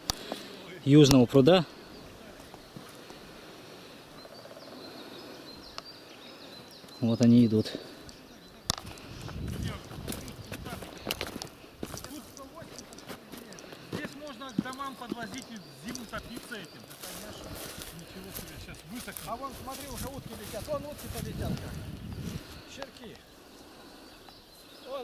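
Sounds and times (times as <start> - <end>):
clicks and rustles: 8.1 - 16.5.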